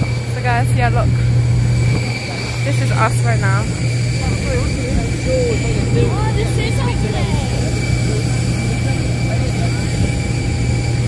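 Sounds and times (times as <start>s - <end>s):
aircraft engines droning: 0.0s - 11.0s
faint voices: 0.1s - 11.0s.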